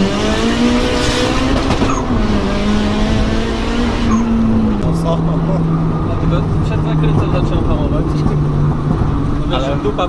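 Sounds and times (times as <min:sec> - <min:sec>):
car engine accelerating: 0:00.0 - 0:10.0
road and wind noise: 0:00.0 - 0:10.0.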